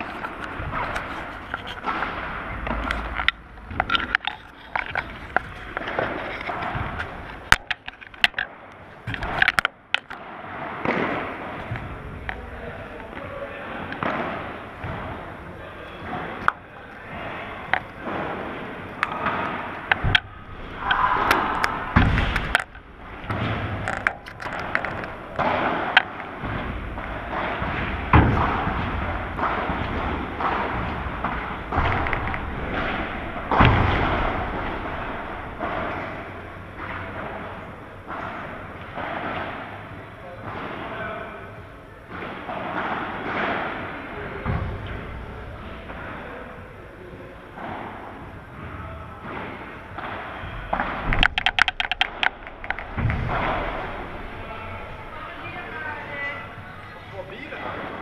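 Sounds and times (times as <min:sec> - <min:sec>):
camera handling bumps and scrapes: 0:00.0 - 0:01.9
ball bouncing: 0:00.0 - 0:12.6, 0:13.9 - 0:15.4, 0:16.0 - 0:40.6, 0:49.3 - 0:56.7
rackets striking ball: 0:00.0 - 0:46.6, 0:47.4 - 0:58.0.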